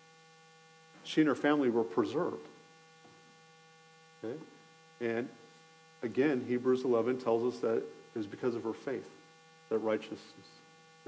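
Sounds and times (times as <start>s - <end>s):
electrical mains hum: 0.0s - 11.0s
man speaking: 1.1s - 2.5s, 4.2s - 5.4s, 6.0s - 10.6s.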